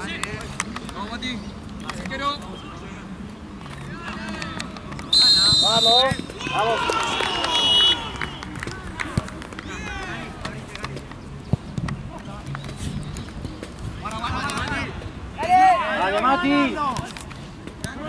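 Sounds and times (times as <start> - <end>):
referee's whistle blast: 5.1 - 6.2, 7.5 - 8.0
players shouting: 5.2 - 10.5, 14.2 - 17.0.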